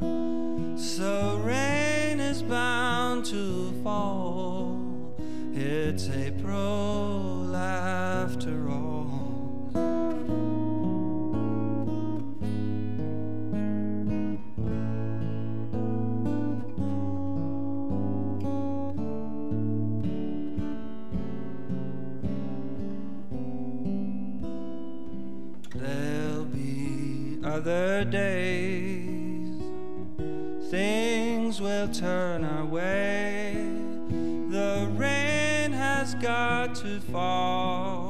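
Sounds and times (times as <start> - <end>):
acoustic guitar strummed and picked: 0.0 - 38.0
person singing: 0.6 - 9.8, 25.6 - 29.8, 30.6 - 38.0.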